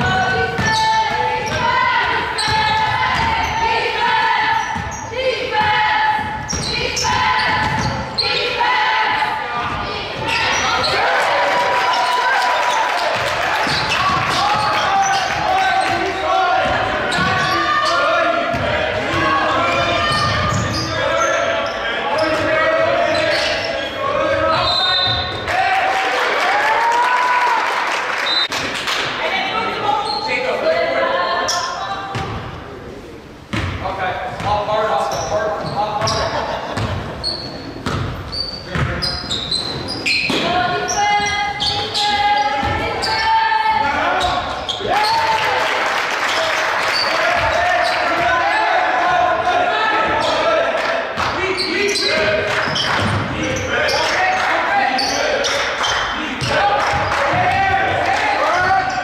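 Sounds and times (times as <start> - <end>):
players shouting: 0.0 - 27.8, 40.3 - 59.0.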